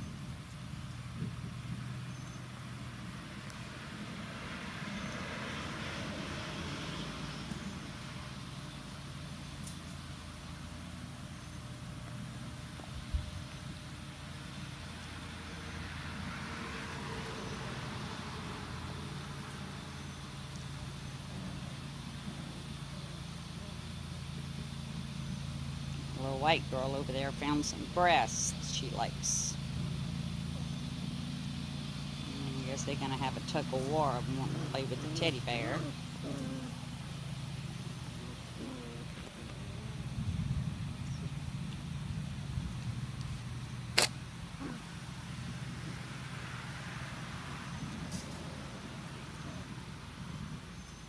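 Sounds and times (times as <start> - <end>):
low mechanical hum: 0.0 - 51.0
faint voice: 38.2 - 40.2.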